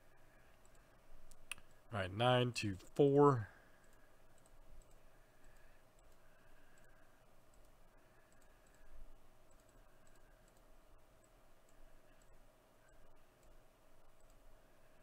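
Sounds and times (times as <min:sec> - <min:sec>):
faint steady hum: 0:00.0 - 0:15.0
computer mouse clicks: 0:00.4 - 0:01.8, 0:03.8 - 0:14.6.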